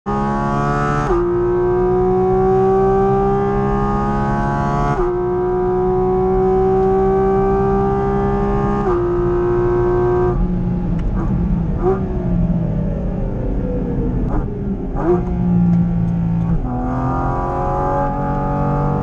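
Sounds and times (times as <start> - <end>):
car engine accelerating with upshifts: 0.1 - 19.0.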